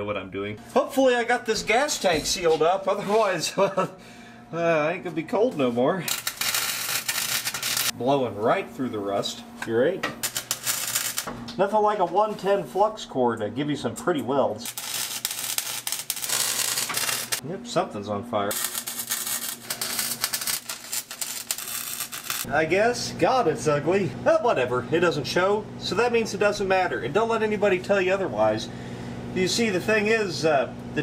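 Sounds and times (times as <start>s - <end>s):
wire welder crackling: 6.0s - 8.0s, 10.2s - 11.6s, 14.6s - 17.4s, 18.5s - 22.5s.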